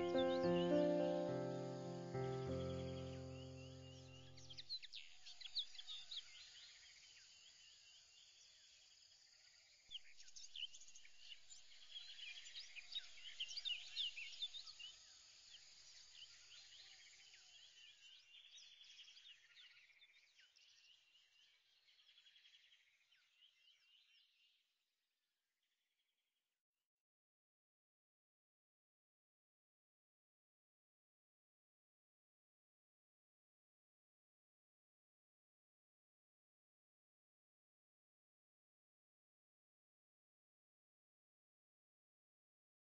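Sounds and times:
background music: 0.0 - 4.2
faint bird chirping: 0.0 - 24.7.

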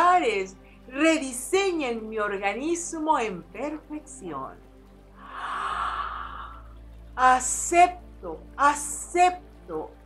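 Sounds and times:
woman's deep breath: 5.2 - 6.8.

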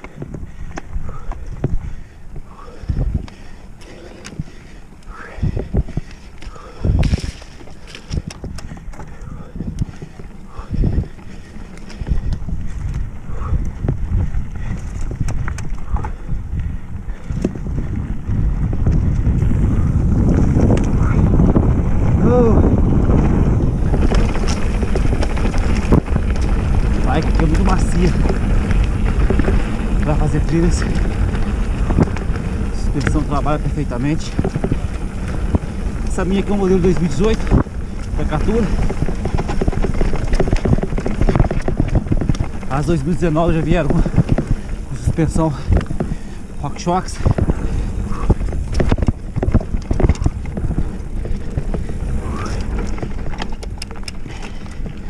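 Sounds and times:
bike knocking and rattling: 0.0 - 55.0
bike tyres rumbling on dirt: 0.0 - 55.0
wind noise on microphone: 0.0 - 55.0.

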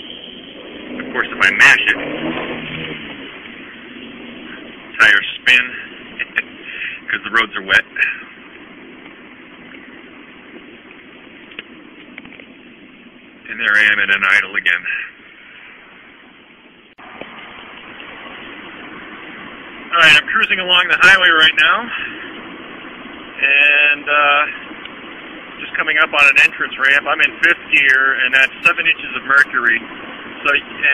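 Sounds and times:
tires spinning on wet road: 0.0 - 12.2, 17.0 - 30.9
low engine note: 0.0 - 30.9.

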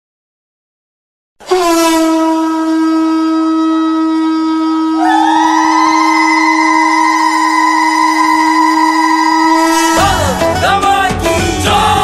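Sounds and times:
higher wavering conch note: 1.4 - 10.4
conch shell long steady note: 1.5 - 10.0.

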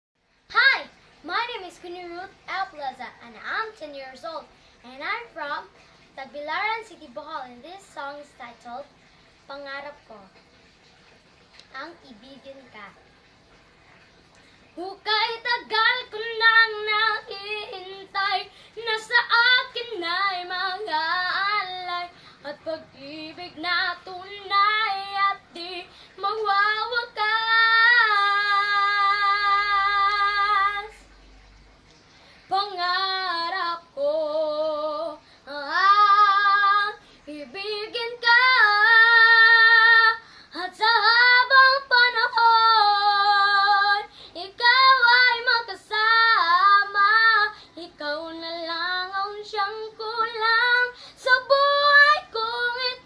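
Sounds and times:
girl singing unaccompanied: 0.4 - 10.4, 11.6 - 13.2, 14.5 - 31.4, 32.4 - 53.0.

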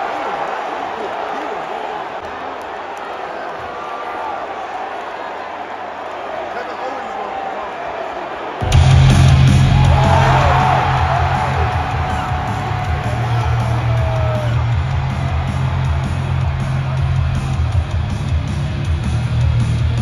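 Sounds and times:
crowd cheering and screaming: 0.0 - 20.0
loud hard rock music: 8.6 - 20.0.

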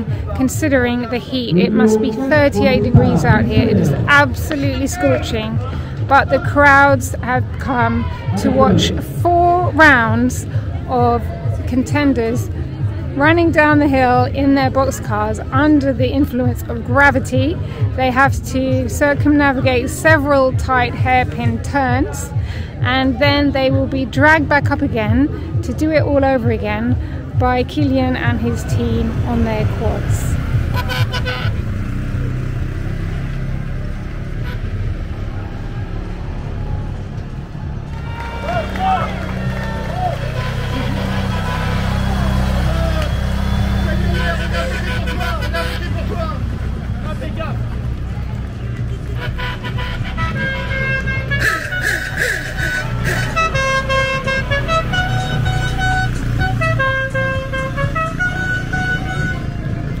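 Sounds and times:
voices: 0.0 - 32.5, 38.2 - 60.0
quad bike engines low hum: 0.0 - 60.0
tune of short held notes: 1.4 - 5.2.

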